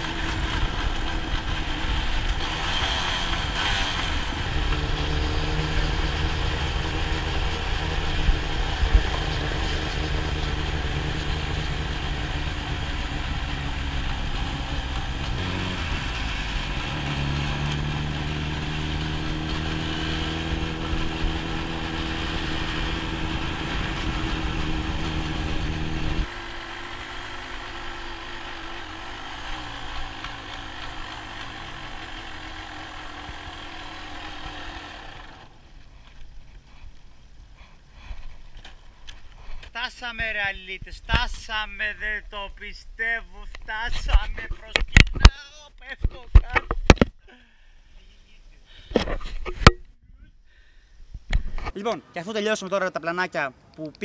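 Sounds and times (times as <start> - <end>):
two-stroke motorcycle engine running: 0.0 - 37.0.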